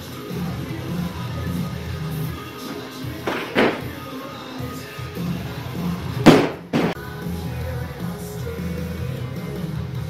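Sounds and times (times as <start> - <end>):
rock music: 0.0 - 10.0
barbell thudding on wooden platform: 2.7 - 4.0, 6.3 - 7.0.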